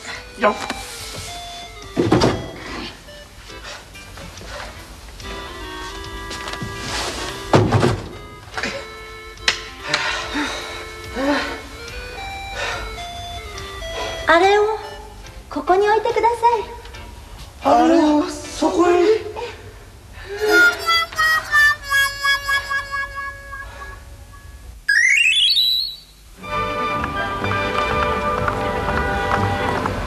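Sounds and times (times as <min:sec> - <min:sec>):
rising electronic beeps: 0:20.5 - 0:26.2.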